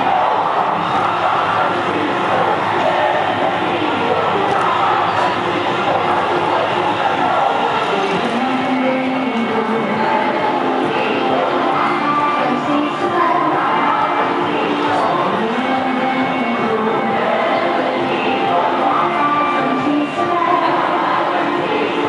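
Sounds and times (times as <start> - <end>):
crowd chatter: 0.0 - 22.0
dance music with singing: 0.0 - 22.0.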